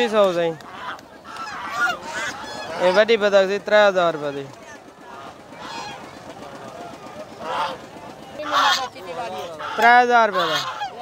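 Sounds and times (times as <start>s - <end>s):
ducks honking: 0.0s - 11.0s.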